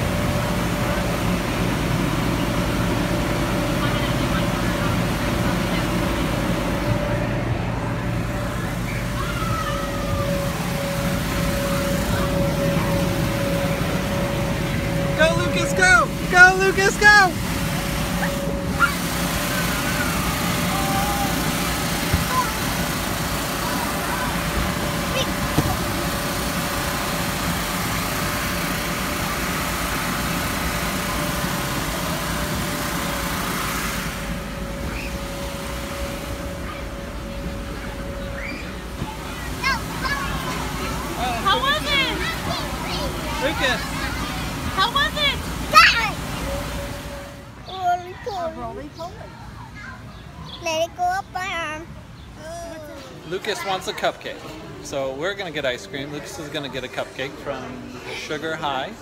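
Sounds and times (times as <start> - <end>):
air blower whirring hum: 0.0 - 47.6
child shrieking: 9.2 - 10.2.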